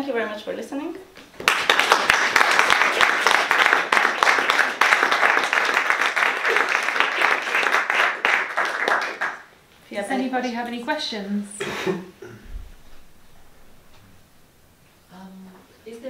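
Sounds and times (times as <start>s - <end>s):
audience applauding: 1.4s - 9.5s.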